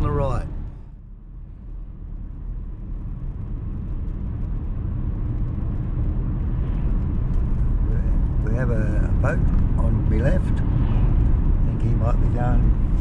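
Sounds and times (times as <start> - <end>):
car road and engine rumble: 0.0 - 13.0.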